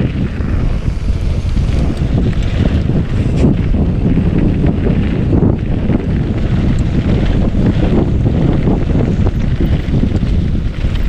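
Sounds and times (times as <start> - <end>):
bike rattling over bumps: 0.0 - 11.0
wind buffeting microphone: 0.0 - 11.0.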